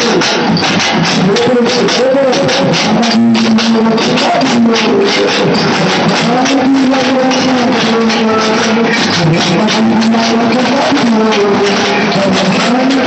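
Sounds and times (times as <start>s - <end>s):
large drums beaten with sticks: 0.0s - 13.0s.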